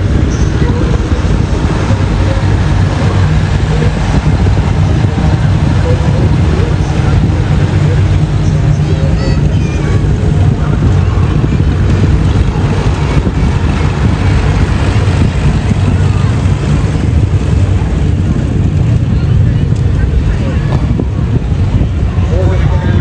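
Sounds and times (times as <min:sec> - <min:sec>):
spectators' voices: 0:00.0 - 0:23.0
vehicle engines rumbling: 0:00.0 - 0:23.0.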